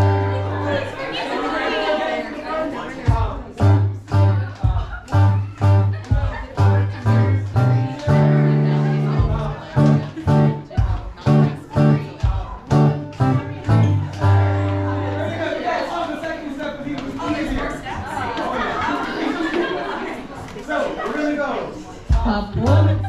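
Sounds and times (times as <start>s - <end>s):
acoustic guitar strumming dance tune: 0.0s - 1.1s, 3.1s - 16.0s, 22.1s - 23.0s.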